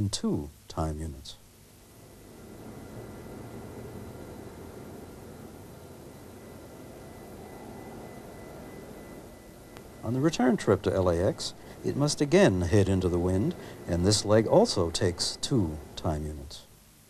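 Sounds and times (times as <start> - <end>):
jet aircraft drone: 2.0 - 16.6.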